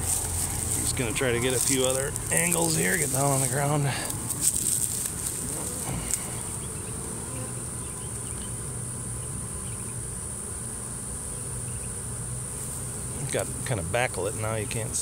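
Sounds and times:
honeybee swarm buzzing: 0:00.0 - 0:15.0.

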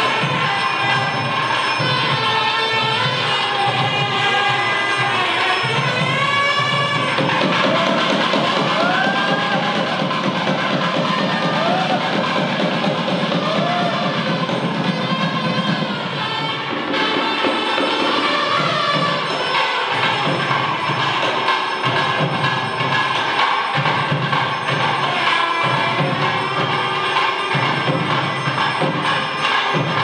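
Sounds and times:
temple ritual music: 0:00.0 - 0:30.0
crowd calling out: 0:07.3 - 0:14.8.

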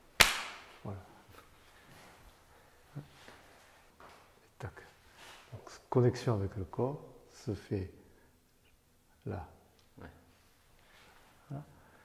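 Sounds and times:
sharp loud smack: 0:00.2 - 0:00.7.

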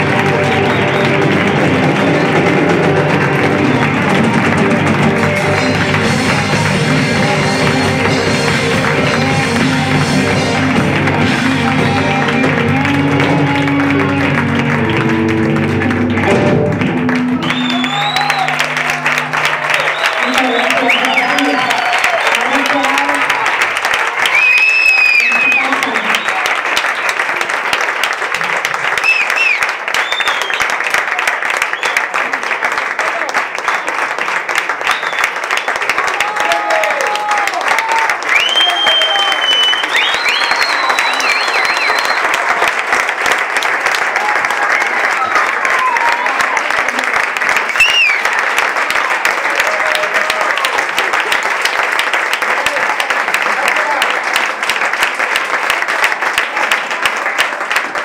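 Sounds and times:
cheers: 0:00.0 - 0:04.6, 0:11.6 - 0:58.0
audience applauding: 0:00.0 - 0:58.0
whistles: 0:17.4 - 0:18.6, 0:19.7 - 0:21.6, 0:24.2 - 0:27.1, 0:29.0 - 0:30.8, 0:31.6 - 0:32.0, 0:34.8 - 0:35.8, 0:38.3 - 0:42.4, 0:47.8 - 0:48.3.

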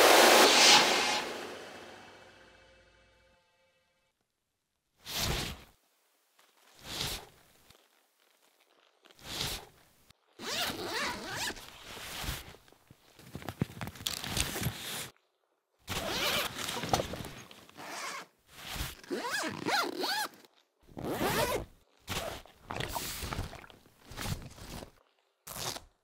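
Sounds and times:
backpack zippers pulled: 0:10.4 - 0:11.6, 0:15.9 - 0:22.5, 0:25.5 - 0:25.9.

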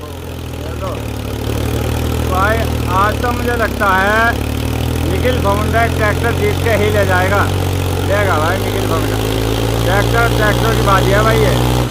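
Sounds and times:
tractor diesel engines droning: 0:00.0 - 0:11.9.

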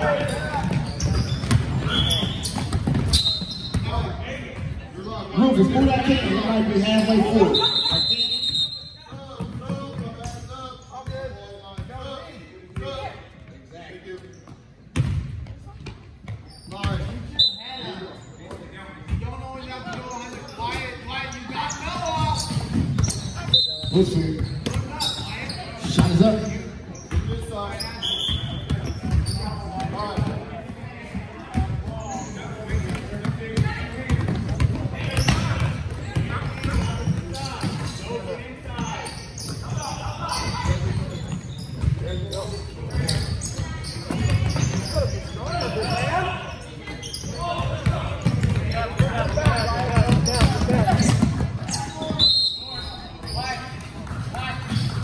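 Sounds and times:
hubbub of voices echoing: 0:00.0 - 0:55.0
basketball bouncing on hardwood: 0:47.8 - 0:51.5.

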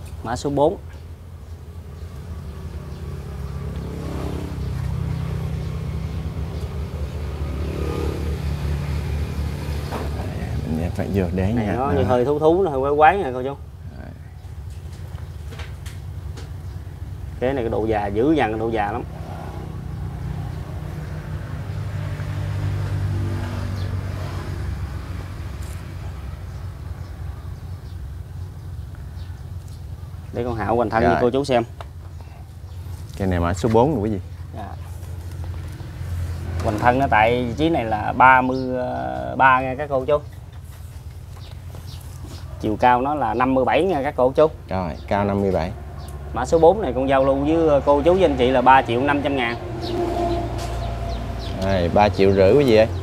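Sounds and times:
low engine hum: 0:00.0 - 0:53.0.

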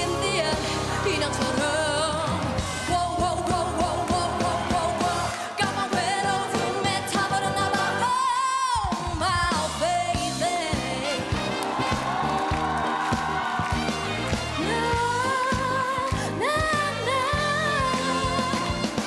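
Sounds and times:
woman singing pop ballad: 0:00.0 - 0:11.6, 0:14.6 - 0:19.0
live band backing: 0:00.0 - 0:19.0.

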